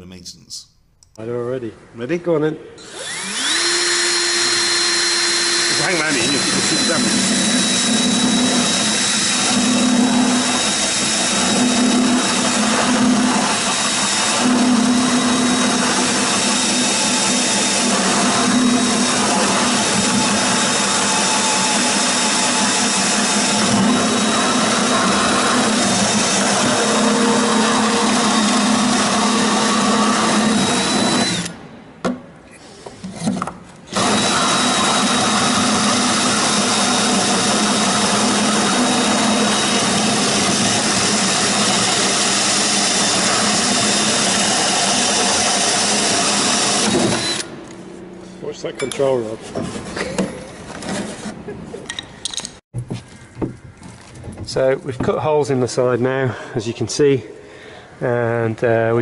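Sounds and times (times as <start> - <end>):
power drill whining: 2.8 - 31.6, 33.9 - 47.7.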